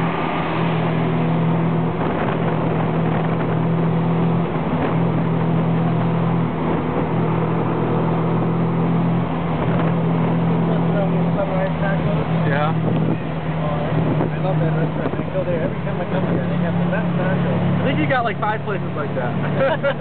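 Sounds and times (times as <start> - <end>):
auto rickshaw engine running: 0.0 - 20.0
road and wind noise: 0.0 - 20.0.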